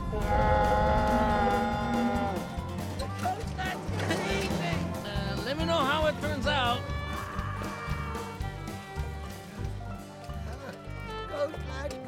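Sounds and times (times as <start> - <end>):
low rumble: 0.0 - 5.4
music: 0.0 - 12.0.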